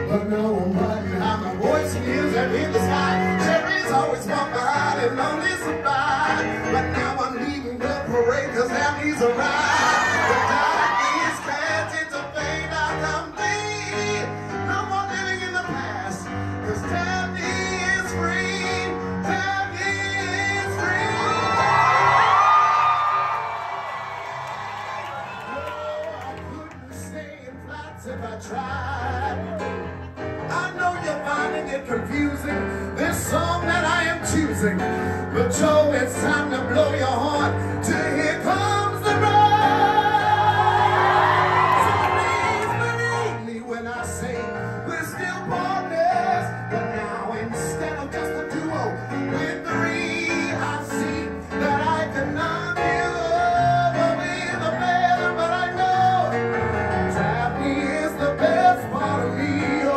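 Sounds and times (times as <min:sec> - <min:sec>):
man singing into a microphone: 0:00.0 - 0:21.8, 0:25.7 - 0:59.9
keyboard accompaniment: 0:00.0 - 0:59.9
crowd whooping and cheering: 0:09.4 - 0:12.0, 0:20.7 - 0:26.9, 0:29.2 - 0:30.1, 0:39.1 - 0:43.4.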